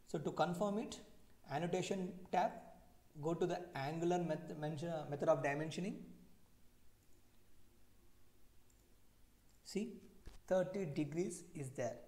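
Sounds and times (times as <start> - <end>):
man speaking: 0.1 - 2.6, 3.2 - 6.1, 9.6 - 12.0
computer mouse clicks: 8.7 - 8.9.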